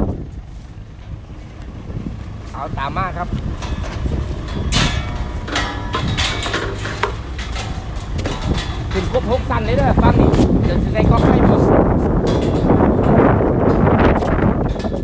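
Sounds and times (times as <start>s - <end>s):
footsteps on metal stairs: 0.0s - 15.0s
low wind rumble on microphone: 0.0s - 15.0s
knocks and clanks: 0.9s - 15.0s.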